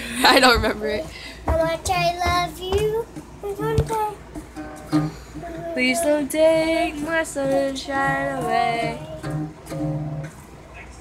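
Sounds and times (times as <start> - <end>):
toy guitar: 7.4 - 10.3.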